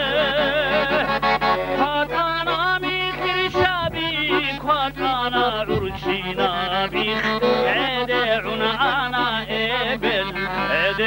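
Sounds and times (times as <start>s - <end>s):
man singing folk song: 0.0s - 11.0s.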